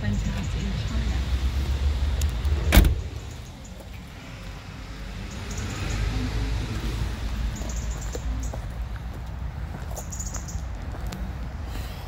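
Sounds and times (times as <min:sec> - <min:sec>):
van door slamming shut: 0:02.7 - 0:03.1.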